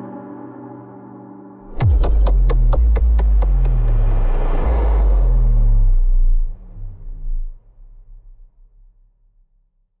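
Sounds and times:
whoosh: 1.7 - 8.7
deep bass drone: 1.7 - 9.5.

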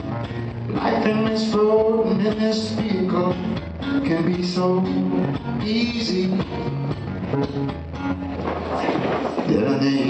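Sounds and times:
acoustic guitar strummed and picked: 0.0 - 10.0.

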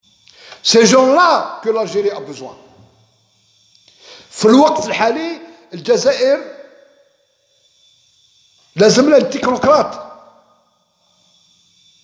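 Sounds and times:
man speaking: 0.6 - 2.8, 4.3 - 6.6, 8.8 - 10.1.

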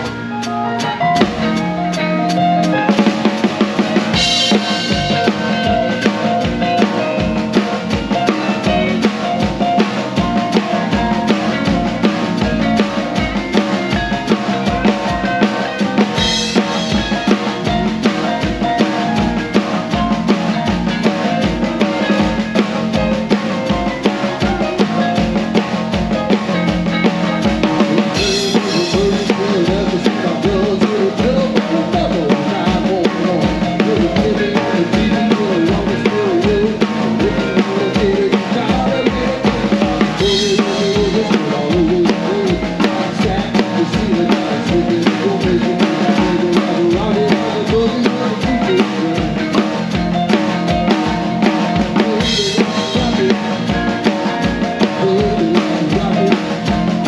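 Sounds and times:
band playing rock shuffle: 0.0 - 57.0.

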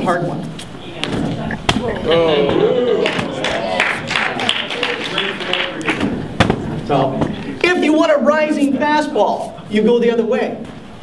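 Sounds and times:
audience voices: 0.9 - 7.6
beach ball thuds: 1.0 - 2.0.

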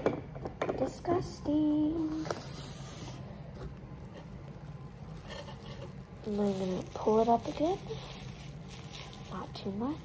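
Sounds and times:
low background hum: 0.0 - 10.0
plastic wrap crinkling: 1.8 - 10.0.

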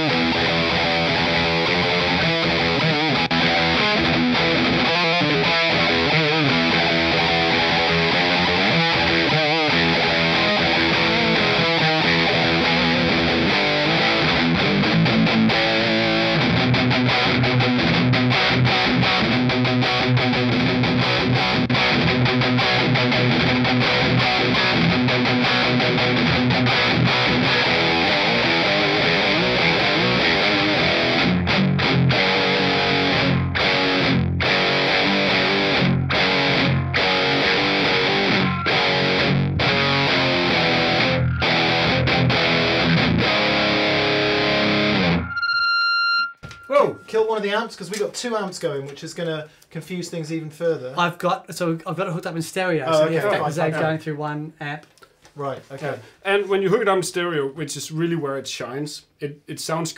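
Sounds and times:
distorted electric guitar riff: 0.0 - 47.4.

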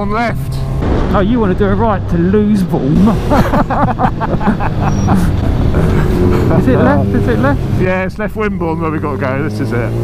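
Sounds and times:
motorcycle engine cruising: 0.5 - 10.0.

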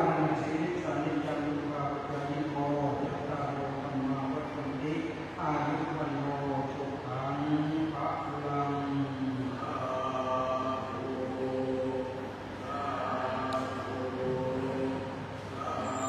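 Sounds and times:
low voices chanting: 9.2 - 16.0.

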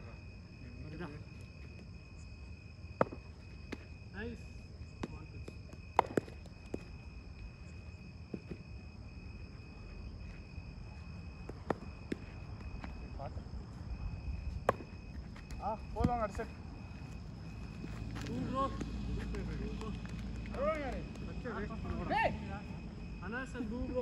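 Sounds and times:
night insects trilling: 0.0 - 24.0
cricket ball knocking off bat: 2.9 - 3.9, 5.0 - 7.0, 14.6 - 16.4.

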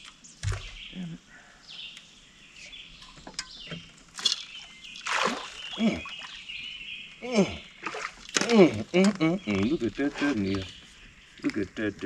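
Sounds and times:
birds chirping: 0.0 - 12.0
water splash: 5.0 - 6.4, 7.8 - 8.8.

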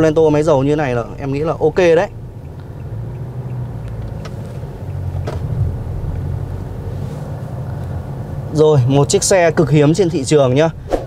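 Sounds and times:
diesel engine drone: 0.0 - 11.0
road noise: 0.0 - 11.0
faint clicks: 2.4 - 5.0.

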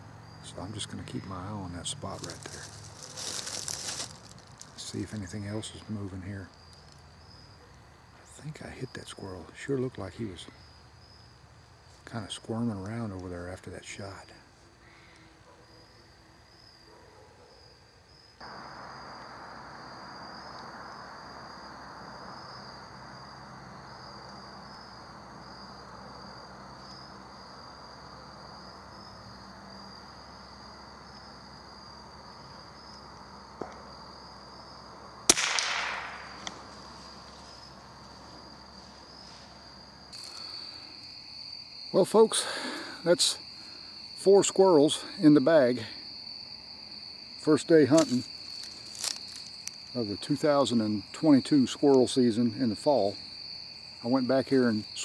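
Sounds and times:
crickets trilling: 0.0 - 55.0
rifle shot with echo: 35.3 - 36.7.

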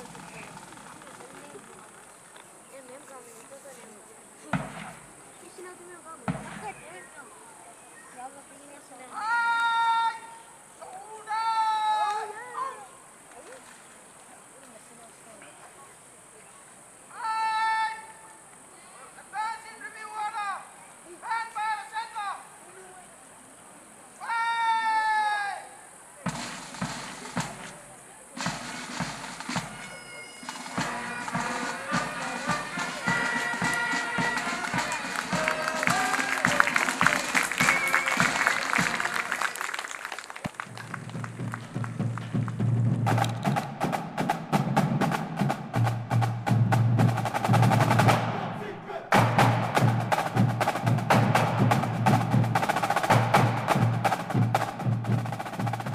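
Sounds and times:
bass drum beating: 4.5 - 5.2, 6.3 - 6.9, 40.7 - 55.9
person shouting command: 9.2 - 12.9, 17.1 - 18.2, 24.2 - 25.7, 48.5 - 49.2
sharp clicking percussion: 26.3 - 48.4.

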